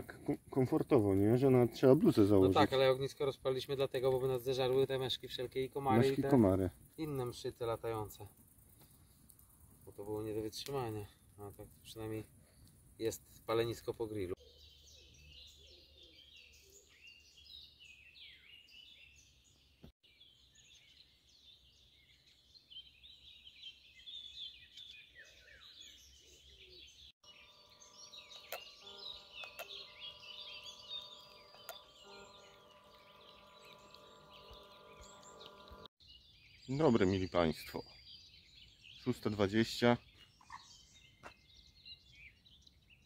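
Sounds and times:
birds chirping and trilling: 0:00.0 - 0:43.0
boat motors humming: 0:27.6 - 0:35.9.

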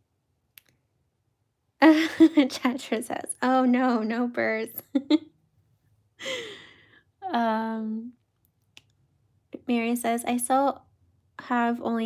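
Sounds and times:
woman talking: 0:01.8 - 0:05.2, 0:07.2 - 0:08.2, 0:09.6 - 0:10.8, 0:11.4 - 0:12.0.

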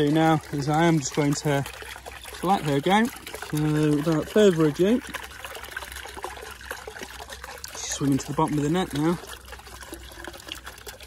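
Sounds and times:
pond water trickling and dripping: 0:00.0 - 0:11.0.

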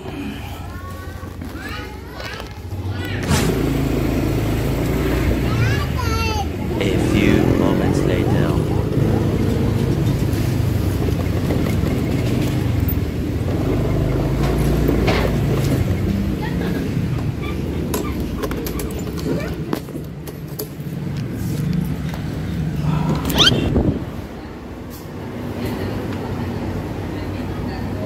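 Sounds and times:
motor scooter engine running: 0:02.7 - 0:24.0.

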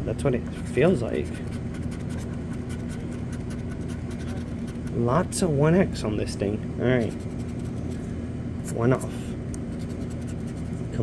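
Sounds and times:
steady low hum: 0:00.0 - 0:11.0
lottery ticket being scratched: 0:00.5 - 0:05.0, 0:07.0 - 0:08.0, 0:08.7 - 0:11.0.

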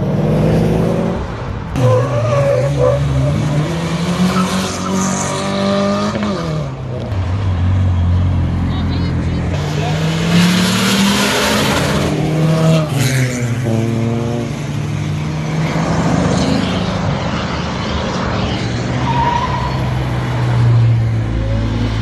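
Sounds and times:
passing cars: 0:00.0 - 0:22.0.

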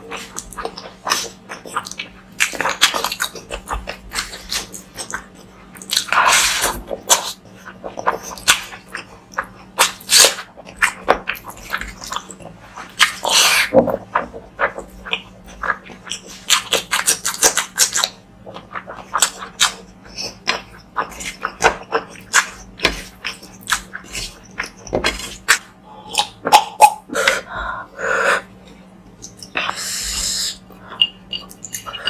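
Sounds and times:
wet chewing and lip-smacking: 0:00.1 - 0:27.5, 0:29.0 - 0:32.0.

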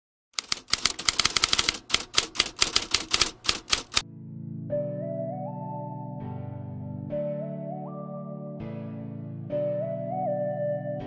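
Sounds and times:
typewriter key clacks: 0:00.4 - 0:04.0.

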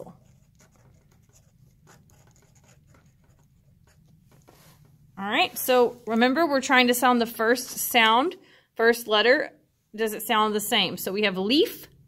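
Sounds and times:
pen scratching on paper: 0:00.0 - 0:04.4.

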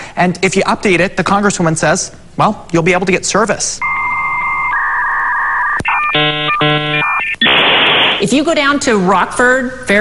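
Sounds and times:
modem tones switching on and off: 0:03.8 - 0:08.2
modem two-tone whistle: 0:03.8 - 0:08.2.

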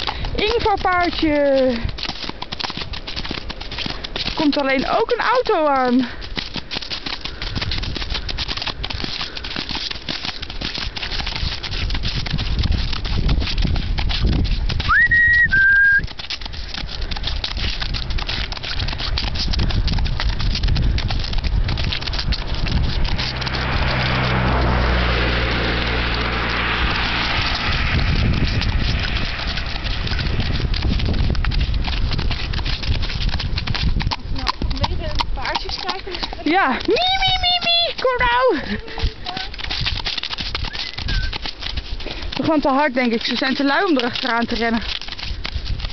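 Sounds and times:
horse hoofbeats trotting: 0:00.0 - 0:45.9
outdoor noise: 0:00.0 - 0:45.9
car passing: 0:21.9 - 0:32.7.

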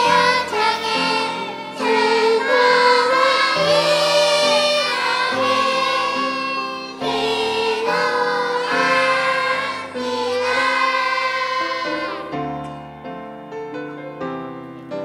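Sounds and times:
children's choir singing: 0:00.0 - 0:12.7
instrumental accompaniment: 0:00.0 - 0:15.0.

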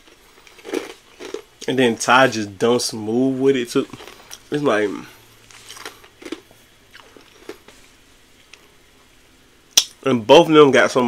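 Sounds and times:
lip smack: 0:09.8 - 0:10.0.

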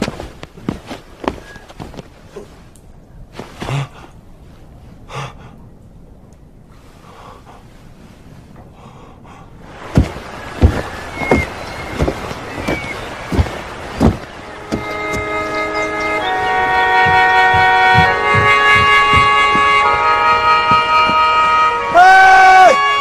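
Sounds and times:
heavy footsteps on wooden stairs: 0:00.0 - 0:02.6, 0:09.8 - 0:21.8
man shouting: 0:21.9 - 0:22.8.

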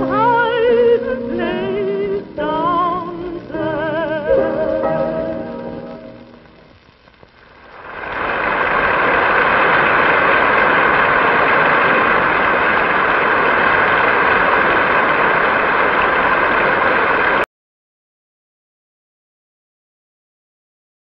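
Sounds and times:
large audience applauding: 0:07.7 - 0:17.5.

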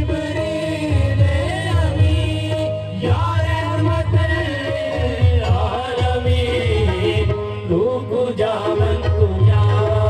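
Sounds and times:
harmonium drone: 0:00.0 - 0:10.0
men singing over microphones: 0:00.0 - 0:10.0
tabla strokes: 0:00.0 - 0:10.0.

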